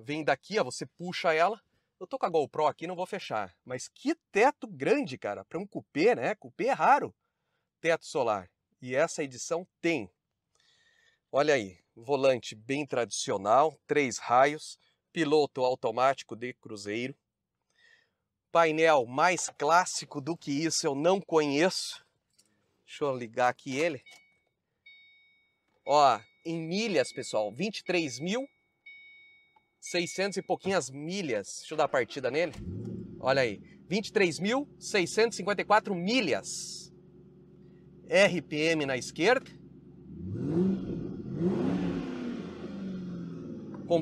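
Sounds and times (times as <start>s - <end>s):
electronic warning chime: 24.0s - 30.8s
car engine revving: 32.3s - 35.8s, 36.4s - 44.0s.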